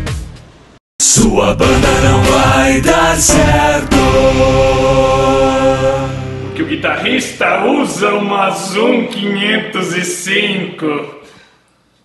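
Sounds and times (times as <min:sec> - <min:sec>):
low bass drone: 0:01.0 - 0:08.0
long chanted vocal note: 0:01.2 - 0:06.6.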